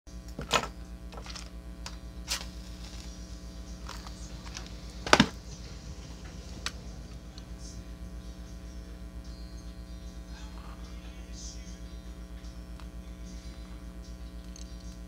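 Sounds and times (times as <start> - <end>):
electrical hum: 0.1 - 15.0
match striking scratch: 2.2 - 5.2.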